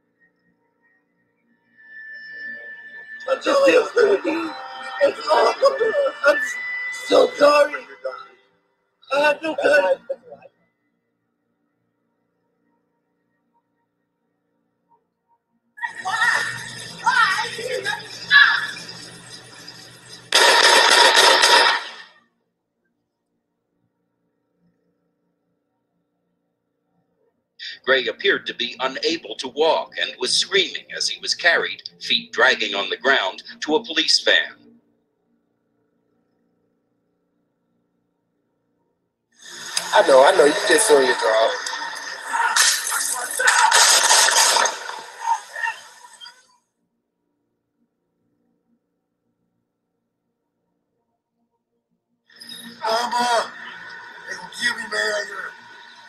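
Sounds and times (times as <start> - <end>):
rapid gunshots: 20.4 - 22.1, 43.5 - 45.1.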